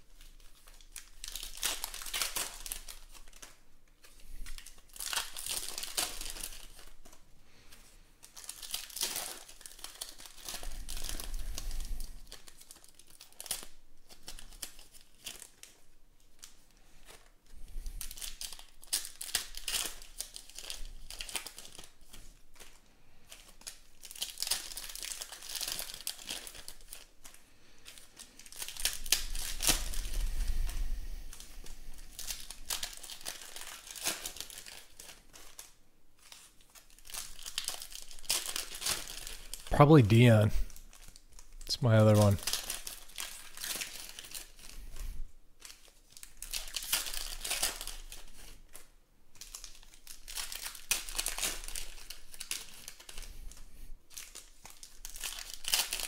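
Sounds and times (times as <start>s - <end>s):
foil wrappers tearing and crinkling: 0.0s - 39.7s, 40.7s - 56.0s.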